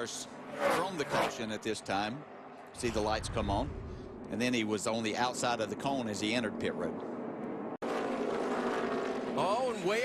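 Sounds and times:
racing car engines passing: 0.0 - 3.8, 7.8 - 10.0.

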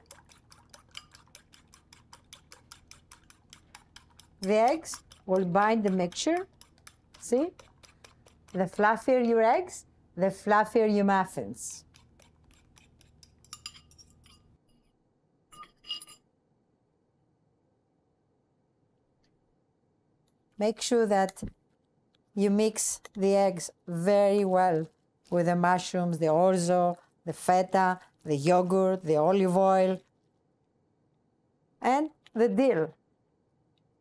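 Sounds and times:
fork clicking against bowl: 0.0 - 8.6, 11.8 - 14.4
spoon clinking ceramic dishes: 13.2 - 14.6, 15.6 - 16.3.

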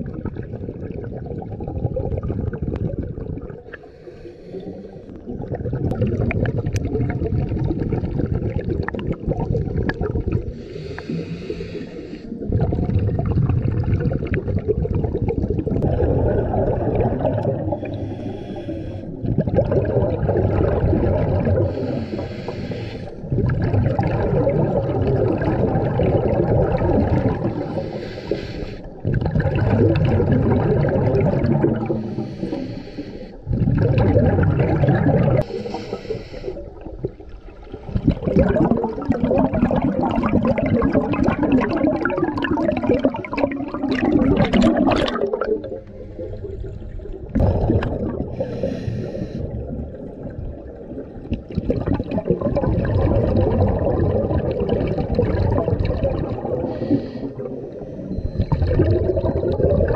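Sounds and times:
bubbling exhaust underwater: 0.0 - 59.9
regulator inhale hiss: 3.7 - 5.2, 10.5 - 12.4, 17.7 - 19.2, 21.7 - 23.3, 27.5 - 29.0, 31.9 - 33.5, 35.4 - 36.9, 48.3 - 49.6, 56.6 - 58.1.

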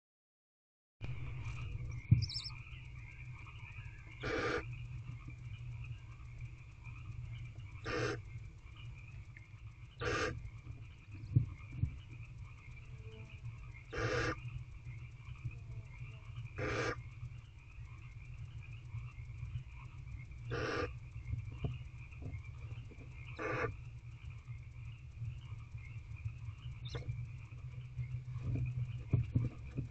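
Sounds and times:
high chirring: 1.2 - 2.7
owlets hissing begging calls: 2.2 - 2.6, 4.1 - 4.7, 7.8 - 8.2, 10.0 - 10.4, 13.9 - 14.4, 16.6 - 17.0, 20.5 - 21.0, 23.4 - 23.8.

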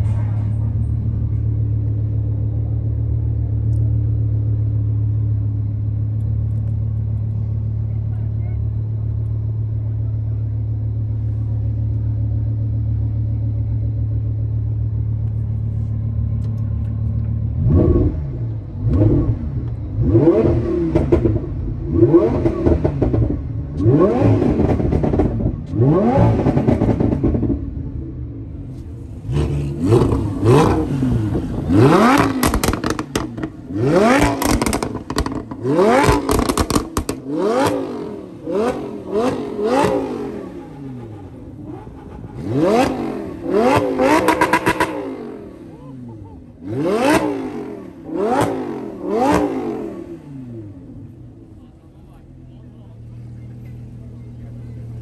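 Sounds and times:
sports car engine revving: 0.6 - 55.0
exhaust crackles and pops: 31.2 - 37.7.

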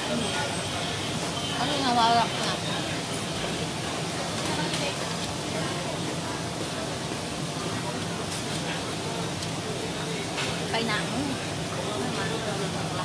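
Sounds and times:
murmur of diners' voices: 0.0 - 13.0.

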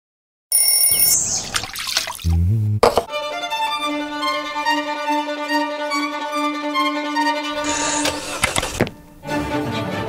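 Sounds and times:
hissing noise: 7.6 - 8.9.

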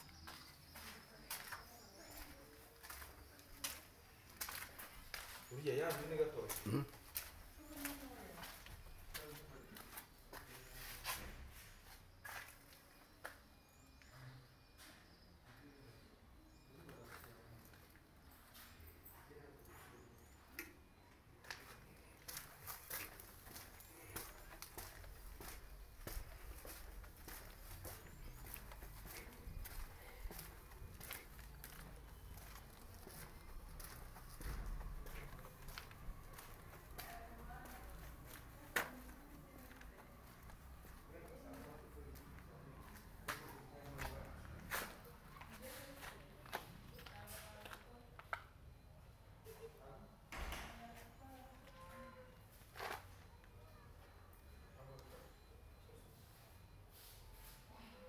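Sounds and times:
footsteps: 0.2 - 13.4, 21.4 - 47.8.

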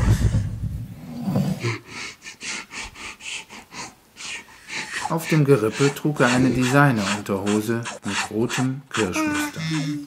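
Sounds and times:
heavy panting: 1.6 - 10.0.

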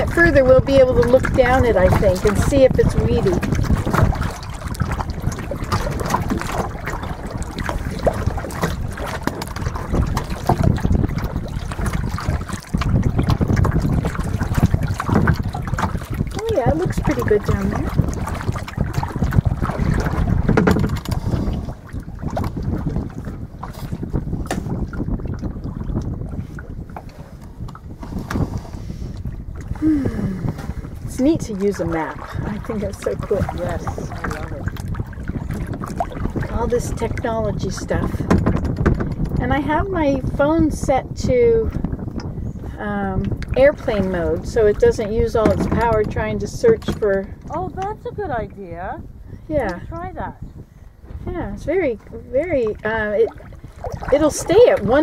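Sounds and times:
water lapping at hull: 0.0 - 55.0
wind buffeting microphone: 0.0 - 55.0.

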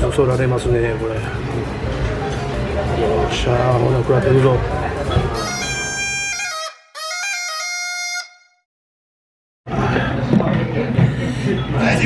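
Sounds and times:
restaurant room noise: 0.0 - 8.3, 9.7 - 12.0
reedy wind instrument melody: 5.4 - 8.6.

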